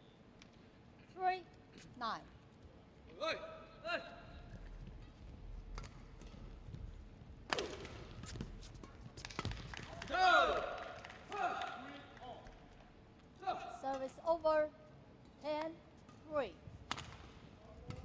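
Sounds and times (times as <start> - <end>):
racket striking shuttlecock: 7.5 - 9.9.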